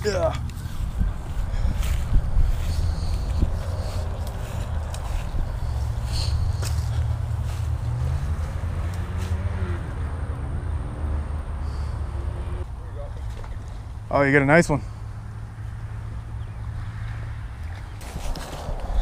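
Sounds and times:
steady low rumble: 0.0s - 8.9s
footsteps in dry grass: 0.1s - 9.5s, 17.7s - 19.0s.

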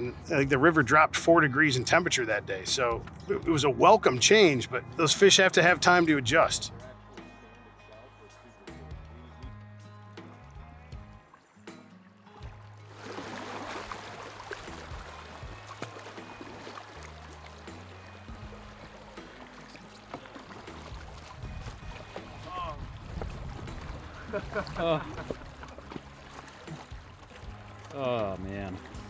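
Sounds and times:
music with low bass notes: 0.0s - 13.1s, 13.7s - 29.0s
river water rushing: 12.2s - 29.0s.

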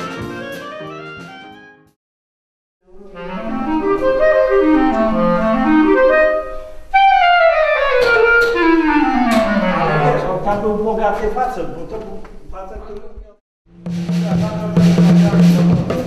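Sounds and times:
clarinet-led woodwind music: 0.0s - 2.0s, 2.9s - 10.4s.

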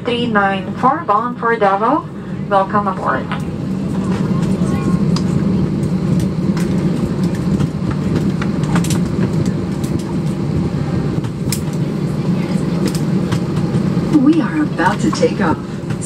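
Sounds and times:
airliner cabin rumble: 0.0s - 16.0s.

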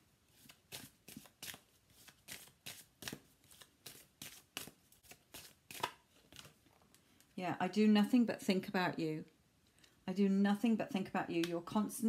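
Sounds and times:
cards being shuffled: 0.3s - 6.9s.

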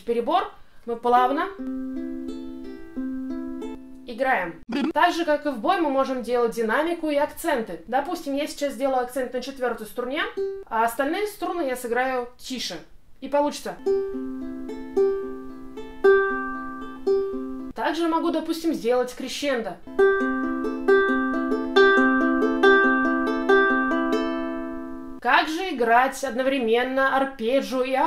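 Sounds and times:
ukulele fingerpicked arpeggio: 1.5s - 4.0s, 10.4s - 10.6s, 13.8s - 17.7s, 19.9s - 25.1s.

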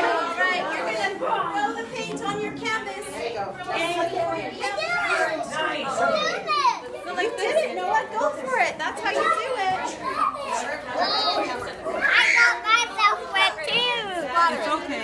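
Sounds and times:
young children chattering: 0.0s - 15.0s.

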